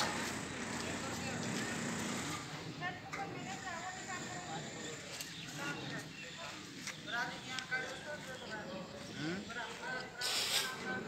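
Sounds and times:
outdoor noise: 0.0s - 11.0s.

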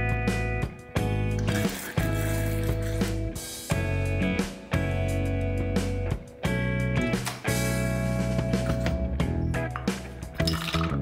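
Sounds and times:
plucked guitar-like background music: 0.0s - 11.0s.

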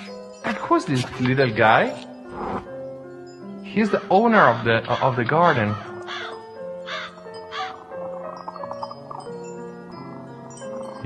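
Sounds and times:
soft music of sustained notes: 0.0s - 11.0s
bird cawing: 3.8s - 9.3s.

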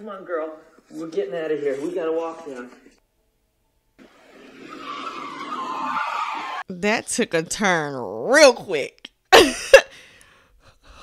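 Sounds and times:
car speeding along: 4.0s - 6.6s.

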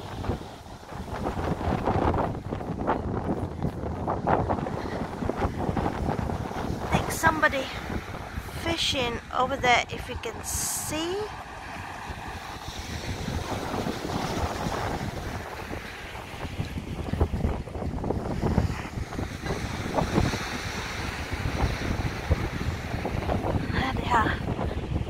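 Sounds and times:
surf breaking on shore: 0.0s - 25.0s
wind buffeting microphone: 0.0s - 25.0s.

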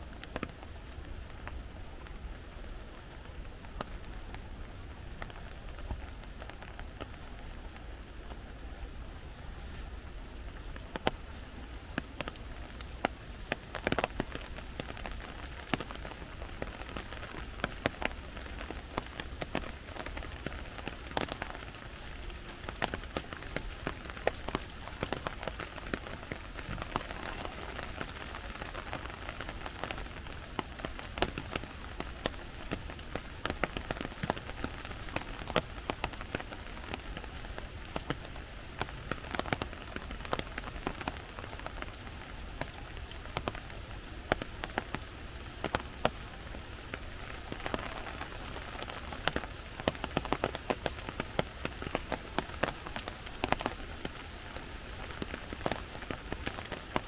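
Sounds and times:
rain falling on foliage: 0.0s - 57.0s.

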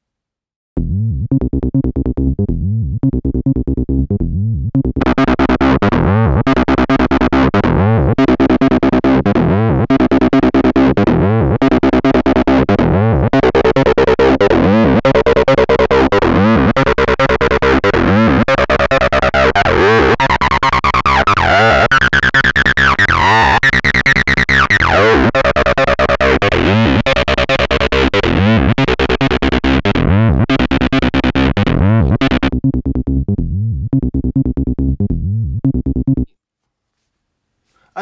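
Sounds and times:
distorted acid synth bassline: 0.8s - 36.2s.

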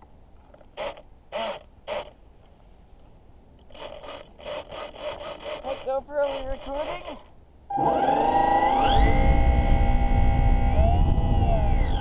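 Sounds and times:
rasping scraping strokes: 3.7s - 8.1s.

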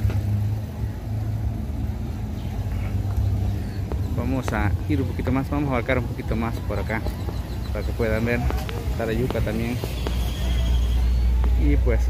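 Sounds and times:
faint street noise: 0.0s - 12.0s
vehicle engine humming: 0.0s - 12.0s.

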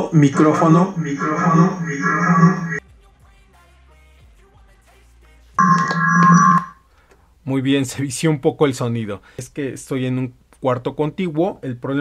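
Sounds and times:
loud electronic tone: 0.0s - 2.8s, 5.6s - 6.8s.

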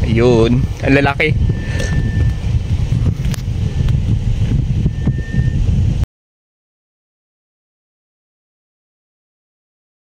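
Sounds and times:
wind buffeting microphone: 0.0s - 6.1s
thin high whistle: 1.4s - 2.5s, 4.8s - 5.7s.

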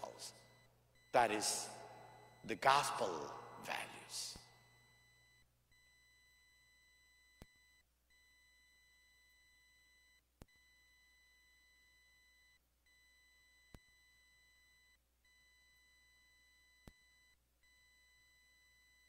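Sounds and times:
faint steady electronic tone: 0.0s - 19.0s.

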